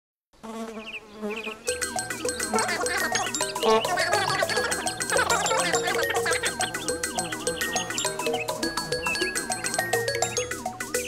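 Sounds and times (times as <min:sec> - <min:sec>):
buzzing insect-like drone: 0:00.4 - 0:10.6
music: 0:01.7 - 0:11.0.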